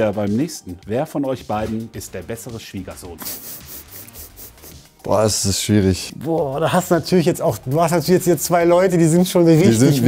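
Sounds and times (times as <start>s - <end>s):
speech: 0.0s - 3.2s, 5.1s - 10.0s.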